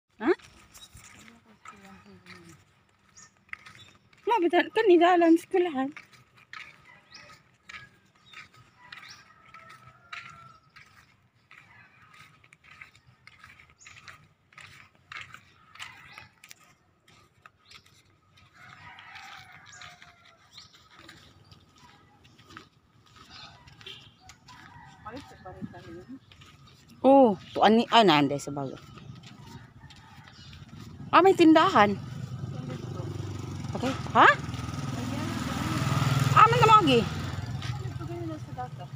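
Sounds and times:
rooster crowing: 8.8s - 10.7s, 18.5s - 20.6s, 23.5s - 26.1s, 28.8s - 30.9s.

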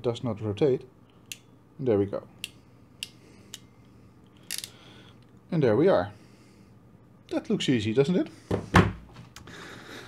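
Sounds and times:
crimping pliers clicking: 4.4s - 4.8s.

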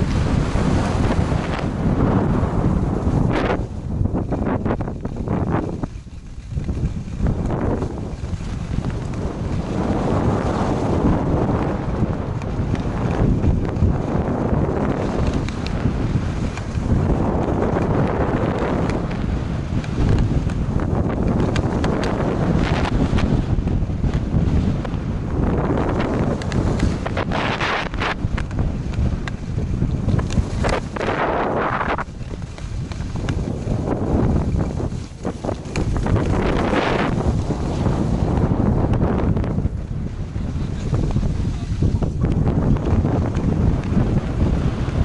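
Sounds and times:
skis scraping on snow: 0.0s - 45.0s
wind rushing over microphone: 0.0s - 45.0s.

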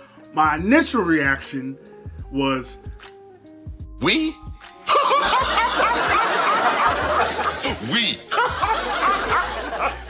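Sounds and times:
studio audience laughing: 4.9s - 10.0s.

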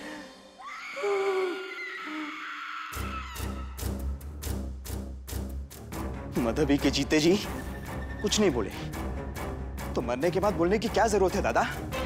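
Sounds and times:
dramatic background music: 2.9s - 12.0s.

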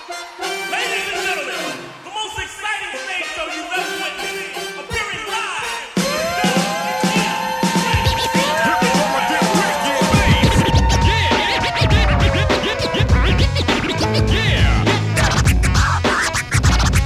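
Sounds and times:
heavy bass drum beat: 6.0s - 17.0s
turntable scratching: 6.1s - 17.0s.

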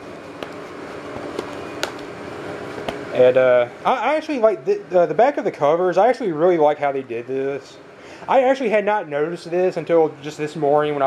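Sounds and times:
soft handling rustle: 0.0s - 3.2s.

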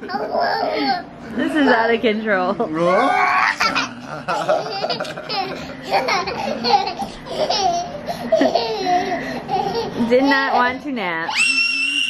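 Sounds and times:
laughter: 3.6s - 6.9s, 8.2s - 9.3s.

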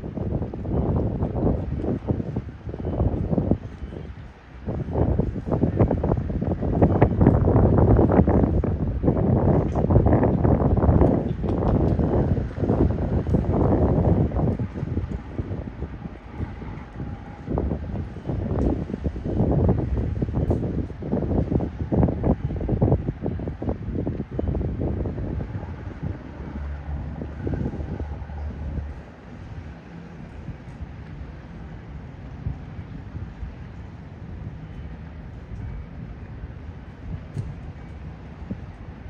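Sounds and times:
low steady rumble: 0.0s - 39.0s
wind buffeting microphone: 0.0s - 39.0s.

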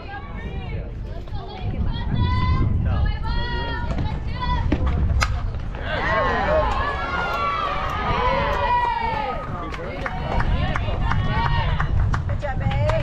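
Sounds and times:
crowd cheering and yelling: 5.8s - 12.0s.

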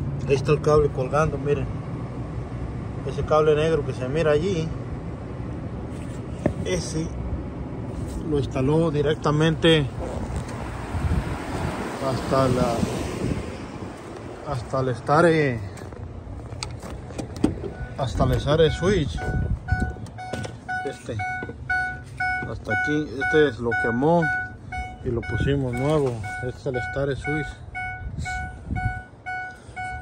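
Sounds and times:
truck warning chime beeping: 17.5s - 30.0s.

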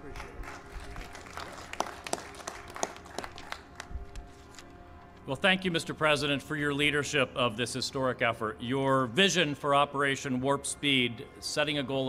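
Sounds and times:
sparse applause: 0.0s - 4.2s.

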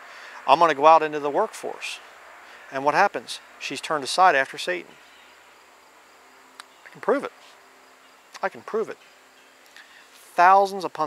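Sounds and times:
insects chirring: 2.0s - 11.0s.

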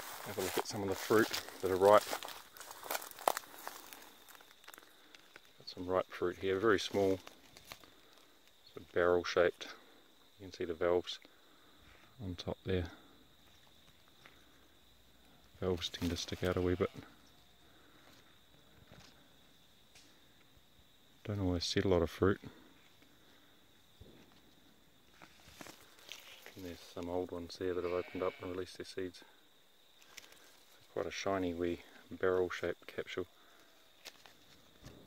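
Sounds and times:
leaves and twigs rustling: 0.0s - 10.3s, 13.2s - 21.1s, 22.5s - 27.4s, 29.5s - 32.6s, 33.4s - 35.0s.

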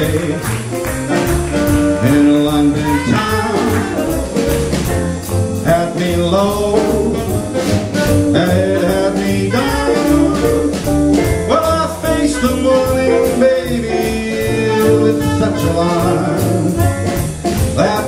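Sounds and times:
jazz combo playing swing: 0.0s - 18.0s.

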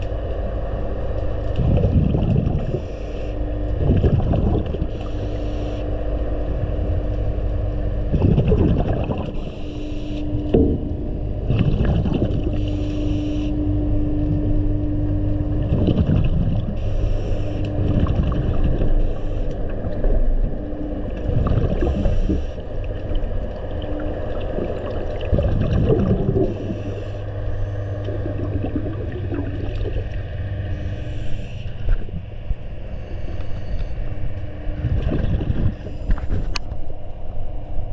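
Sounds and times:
underwater rumble and hum: 0.0s - 37.9s
bubbles hissing: 8.1s - 10.2s, 11.4s - 13.6s, 15.6s - 19.5s, 21.3s - 27.3s, 27.9s - 31.5s.

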